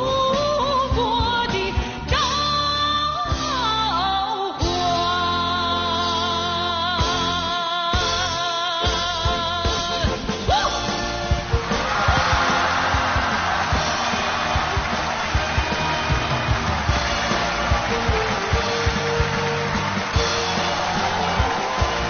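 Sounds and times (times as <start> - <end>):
live rock band playing: 4.6 - 22.0.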